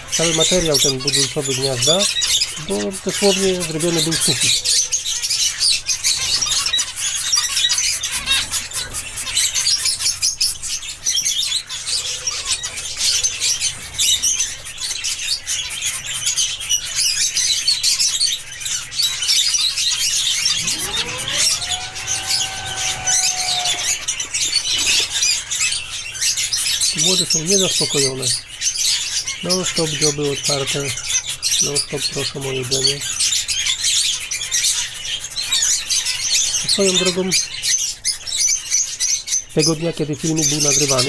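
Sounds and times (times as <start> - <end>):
finches chirping: 0.1 - 5.5, 20.3 - 24.1
low gliding tone: 20.5 - 24.0.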